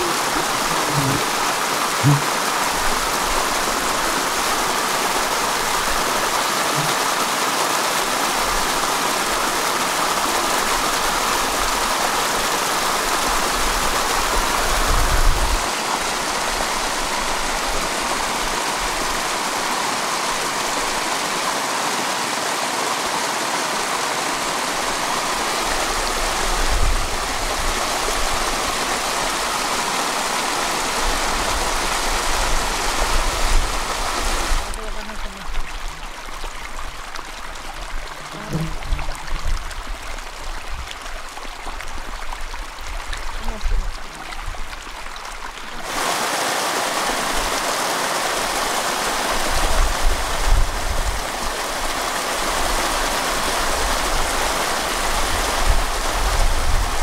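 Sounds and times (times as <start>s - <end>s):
running water rushing: 0.0s - 57.0s.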